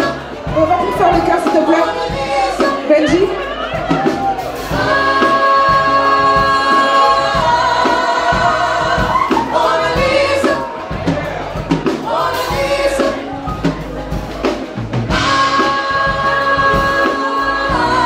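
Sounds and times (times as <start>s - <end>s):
women singing with choir: 0.0s - 11.1s, 12.0s - 13.7s, 15.1s - 18.0s
drum hits: 0.0s - 18.0s
soul band playing: 0.0s - 18.0s.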